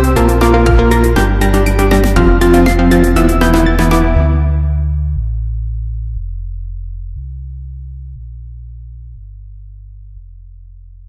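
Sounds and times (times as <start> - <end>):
low synthesizer bass tones: 0.0 - 11.0.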